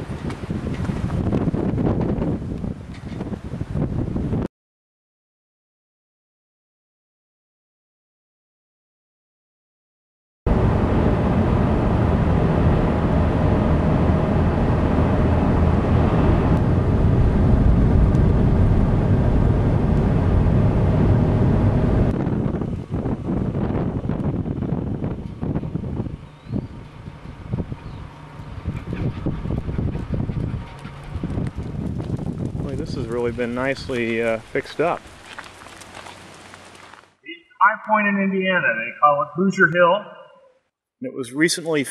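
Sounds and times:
car engine and tyre noise: 0.0 - 4.0, 10.5 - 37.2
gusty wind on microphone: 0.0 - 4.5, 10.5 - 36.9.

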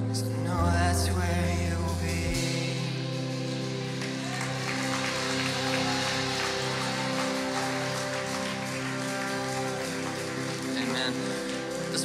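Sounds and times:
band playing held chords: 0.0 - 12.0
electric guitar: 0.0 - 12.0.

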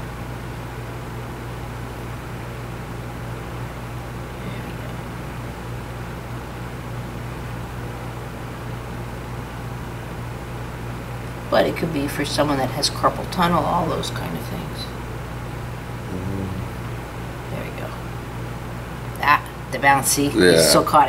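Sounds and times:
steady hum with hiss: 0.0 - 21.0.

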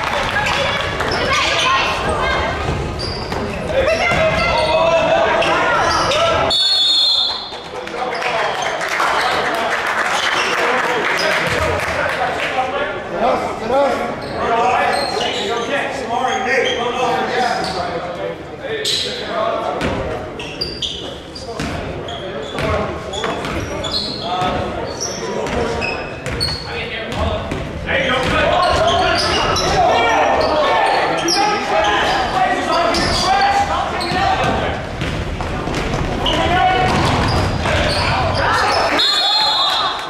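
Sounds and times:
sneaker squeaks on hardwood: 1.1 - 4.8, 20.4 - 26.8, 36.2 - 39.5
referee's whistle blast: 6.5 - 7.5, 38.9 - 40.0
basketball bouncing: 34.3 - 38.2.

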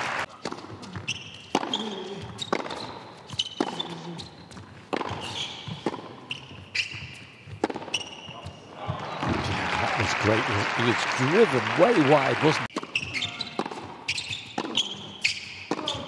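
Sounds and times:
tennis ball bouncing: 0.4 - 3.9, 4.5 - 9.4, 12.7 - 16.0
shoe squeaks on court: 0.4 - 8.7, 12.8 - 16.0.

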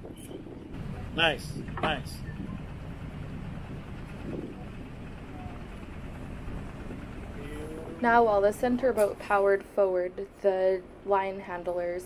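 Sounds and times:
boat engines rumbling: 0.0 - 12.0.

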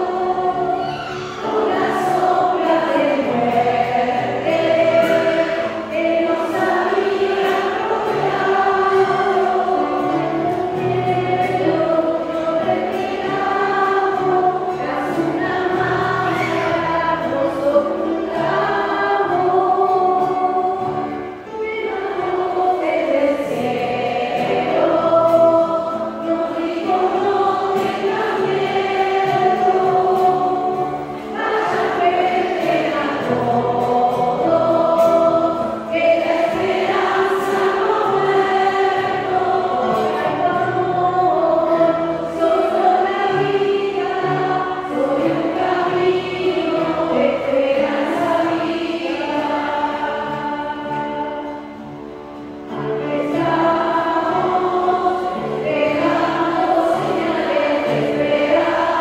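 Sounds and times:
piano accompaniment: 0.0 - 59.0
women singing a hymn: 0.0 - 59.0.

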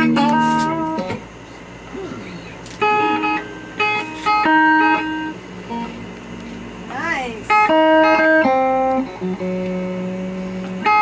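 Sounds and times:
electric guitar playing: 0.0 - 11.0.

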